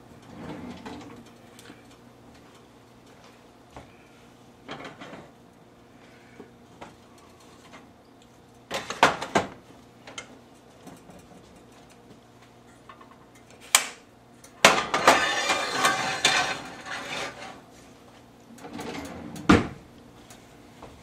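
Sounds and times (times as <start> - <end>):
pan clattering and scraping on stove: 14.6 - 17.6.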